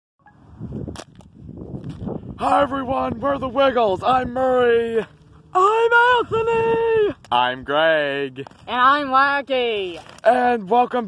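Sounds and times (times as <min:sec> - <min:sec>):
phone handling rustle over gravel: 0:08.2 - 0:10.8.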